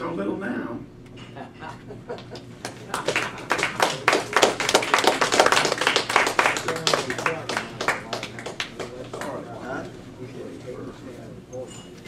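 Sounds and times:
audience applauding: 2.6 - 9.4.

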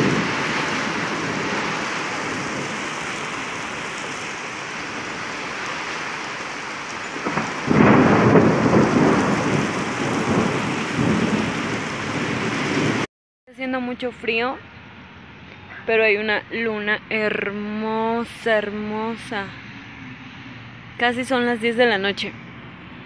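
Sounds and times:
deep thunder rumble: 0.0 - 5.4, 7.0 - 13.1
heavy rain and hail: 0.0 - 13.1.

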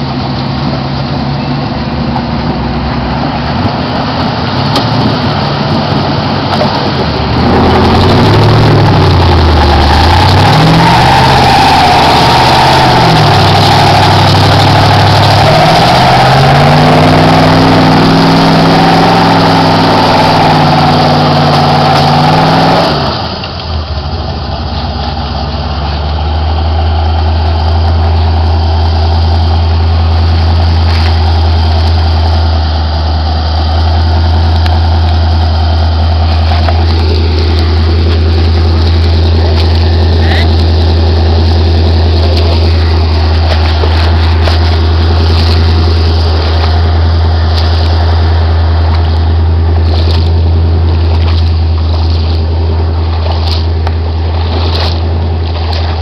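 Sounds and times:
low engine drone: 0.0 - 56.0
truck engine revving: 0.0 - 56.0.

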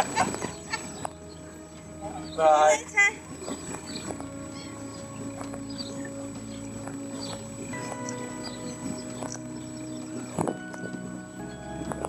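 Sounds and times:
background music of held chords: 0.0 - 12.0.

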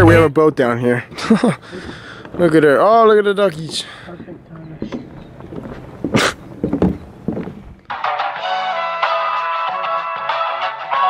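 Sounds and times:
footsteps on wooden dock: 1.2 - 7.9
background guitar music: 7.9 - 11.0.

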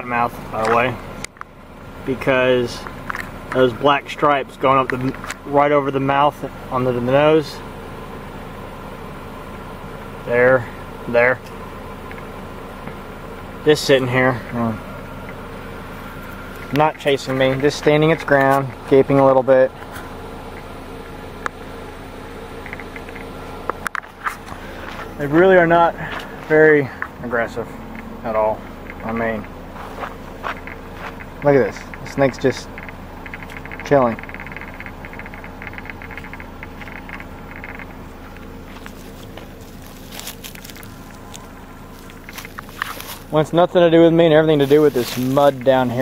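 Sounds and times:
low mechanical hum: 0.0 - 46.0
insects chirping in pulsed bursts: 6.6 - 19.0, 19.7 - 46.0
sharp clicks: 22.6 - 24.1, 30.5 - 38.5
rustling and scraping: 23.0 - 27.2, 28.9 - 32.1, 36.2 - 43.4, 44.5 - 46.0.

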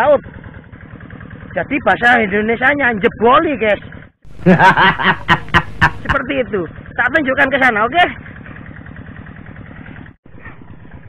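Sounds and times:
hand tractor engine running: 0.0 - 11.0.

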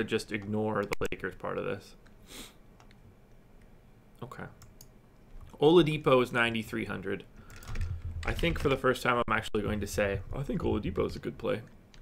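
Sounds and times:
keyboard and mouse clicks: 0.4 - 1.2, 2.8 - 3.7, 4.6 - 5.6, 7.4 - 8.8, 11.5 - 12.0.

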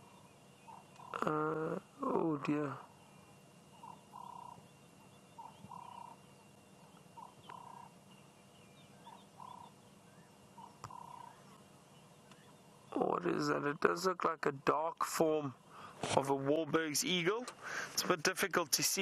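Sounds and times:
faint bird call: 0.0 - 13.6.

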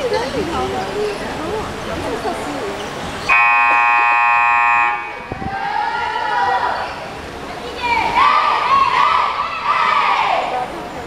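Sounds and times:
scoreboard buzzer blast: 3.3 - 5.2
girls calling out: 5.0 - 10.6.

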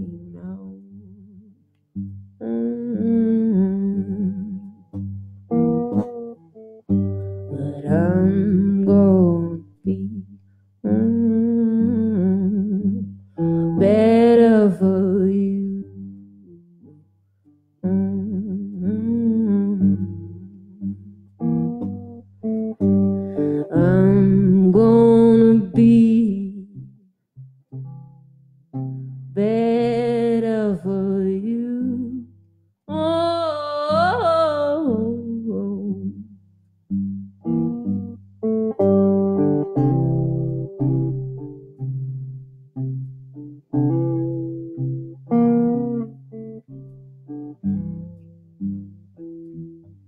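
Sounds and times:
woman singing with vibrato: 0.0 - 1.6, 2.4 - 4.7, 7.5 - 16.1, 17.8 - 20.8, 23.3 - 26.8, 29.4 - 32.3, 32.9 - 36.4
electric guitar playing: 0.0 - 17.0, 17.8 - 36.3, 36.9 - 50.0.

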